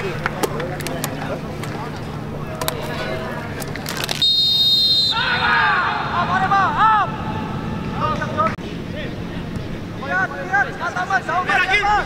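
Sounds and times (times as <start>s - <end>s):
referee's whistle blast: 4.2s - 5.5s
players shouting: 4.8s - 8.4s.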